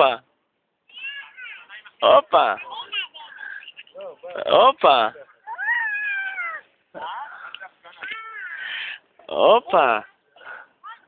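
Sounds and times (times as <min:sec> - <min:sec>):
baby squealing: 0:05.5 - 0:06.7.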